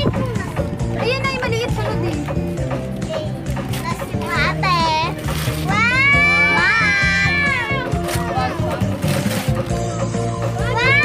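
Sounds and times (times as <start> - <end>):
background music: 0.0 - 11.0
child squealing: 5.7 - 8.0, 10.6 - 11.0.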